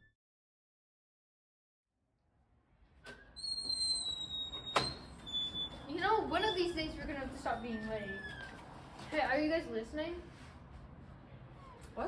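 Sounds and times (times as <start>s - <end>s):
door opening with squeak: 3.0s - 8.7s.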